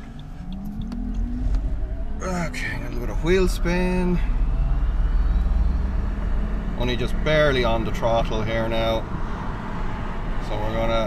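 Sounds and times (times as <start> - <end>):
road and drivetrain rumble: 0.0 - 11.0.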